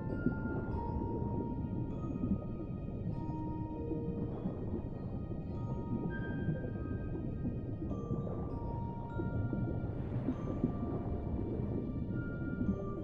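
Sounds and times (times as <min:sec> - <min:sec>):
muffled underwater rumble: 0:00.0 - 0:13.0.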